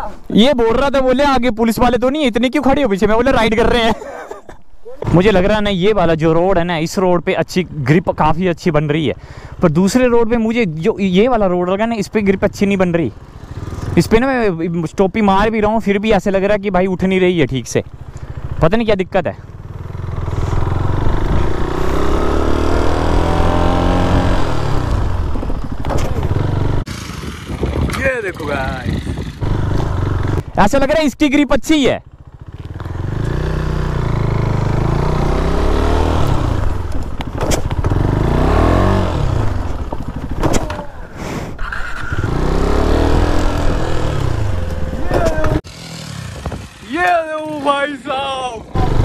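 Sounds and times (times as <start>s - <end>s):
motorcycle engine revving: 13.1s - 14.5s, 17.8s - 18.7s, 19.4s - 30.6s, 32.0s - 40.9s, 41.6s - 47.5s, 48.6s - 49.0s
rushing wind: 19.6s - 31.1s, 32.3s - 49.0s.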